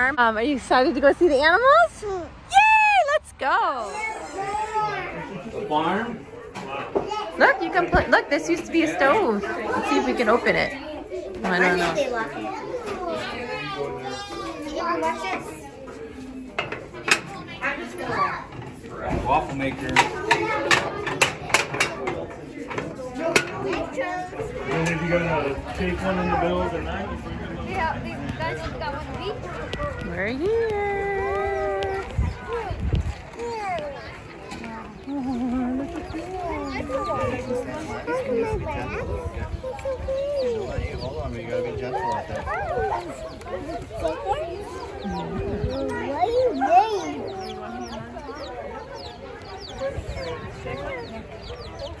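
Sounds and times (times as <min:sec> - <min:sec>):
baby chicks peeping: 0:30.3 - 0:52.0.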